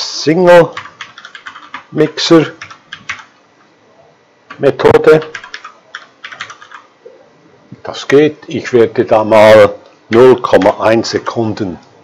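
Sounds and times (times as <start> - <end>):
typing on computer keyboard: 0.7 - 3.4, 4.5 - 6.9.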